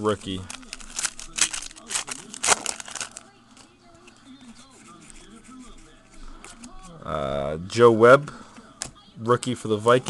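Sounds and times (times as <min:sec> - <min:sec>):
foil wrapper crinkling and tearing: 0:00.0 - 0:03.3
soft handling of wrapper: 0:00.0 - 0:04.4.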